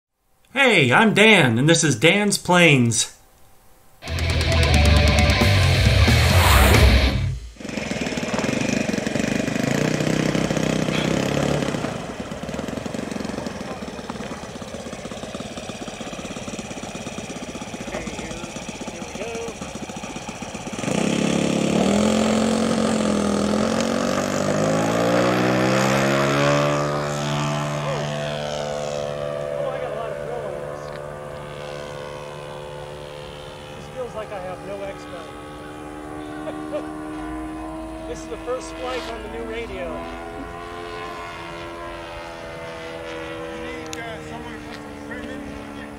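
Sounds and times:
intro music: 0:04.0 - 0:07.6
model plane engine running: 0:04.0 - 0:45.9.

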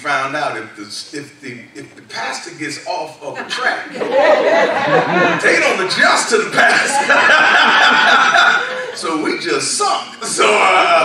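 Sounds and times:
chuckling laughter: 0:04.0 - 0:05.7, 0:06.6 - 0:09.0
man preaching loudly: 0:05.2 - 0:07.0, 0:09.0 - 0:11.0.

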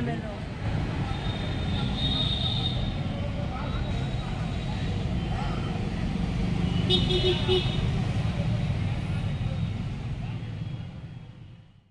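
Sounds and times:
street traffic rumble: 0:00.0 - 0:11.9.

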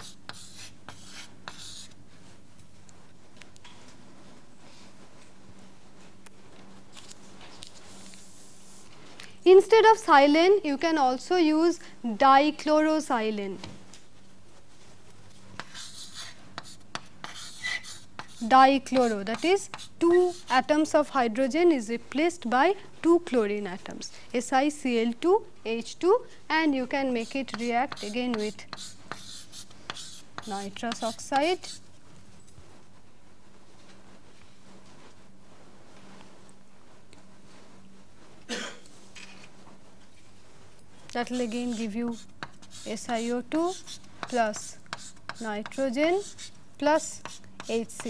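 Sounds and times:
pen scratching on paper: 0:00.0 - 0:01.9, 0:15.6 - 0:20.8, 0:27.0 - 0:31.8, 0:41.2 - 0:48.0
person coughing: 0:38.5 - 0:38.9.

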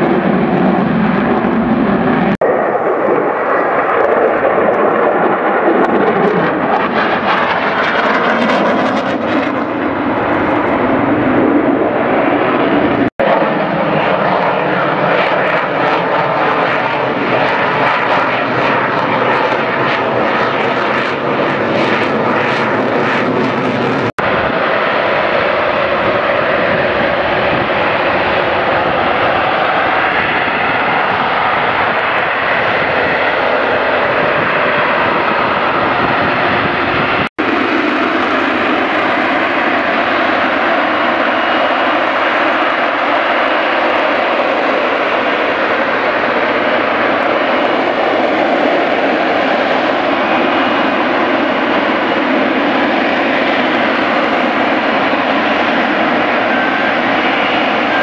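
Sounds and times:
jet engine roaring and crackling: 0:00.0 - 0:58.0.

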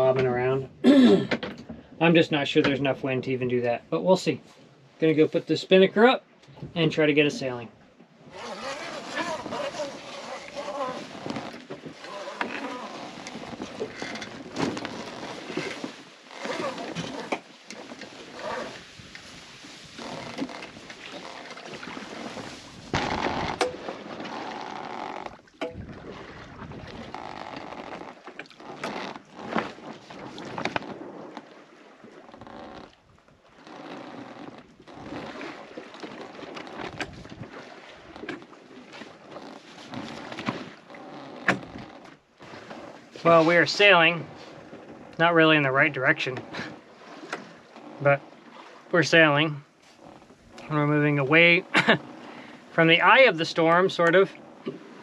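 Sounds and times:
sail cloth rustling and flapping: 0:08.3 - 0:45.2.

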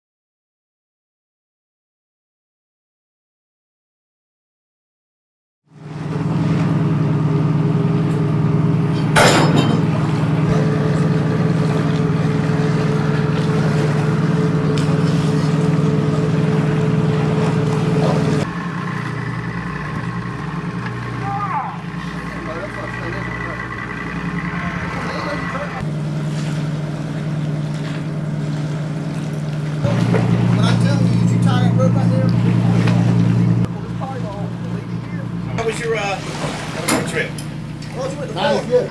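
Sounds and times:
boat engine humming: 0:05.7 - 0:38.9
faint crew voices: 0:21.2 - 0:25.9, 0:29.8 - 0:38.9.

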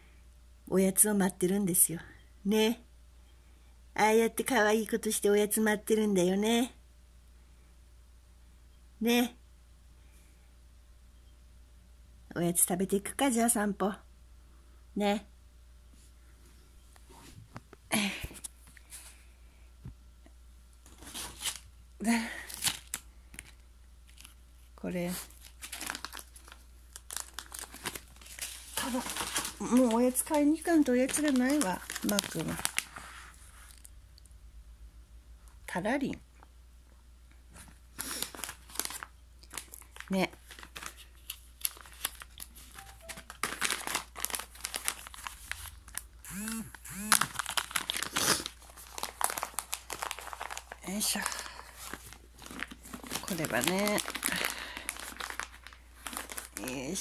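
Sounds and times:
treat bag crinkling: 0:20.8 - 0:24.4, 0:25.1 - 0:34.0, 0:37.6 - 0:57.0.

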